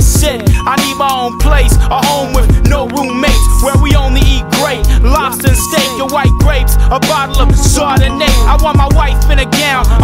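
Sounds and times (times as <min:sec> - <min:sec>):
rapping over a beat: 0:00.0 - 0:10.0
deep repeated bass notes: 0:01.4 - 0:10.0.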